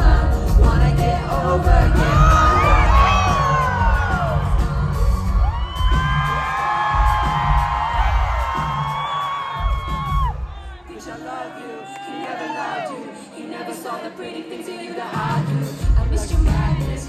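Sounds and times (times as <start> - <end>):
live pop band playing: 0.0 - 10.9, 15.0 - 17.0
crowd whooping: 2.1 - 13.2.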